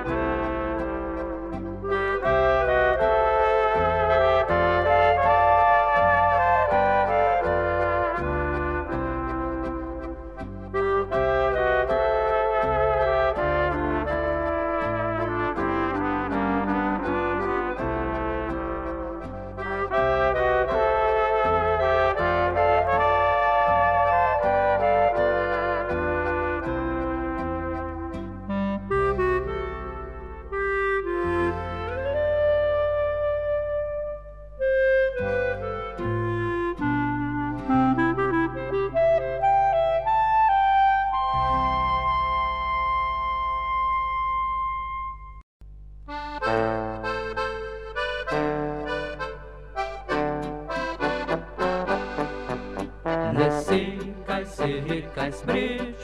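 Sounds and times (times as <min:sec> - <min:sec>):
folk band playing: 0:00.0 - 0:44.8, 0:46.2 - 0:56.0.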